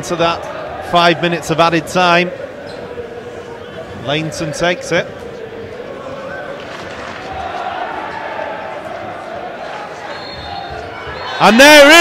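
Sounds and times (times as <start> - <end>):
football fans singing: 0.0 - 12.0
referee whistle: 10.0 - 11.5.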